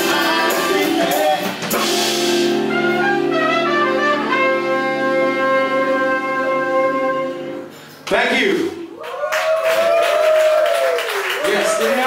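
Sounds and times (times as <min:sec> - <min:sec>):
horn section playing: 0:00.1 - 0:07.8.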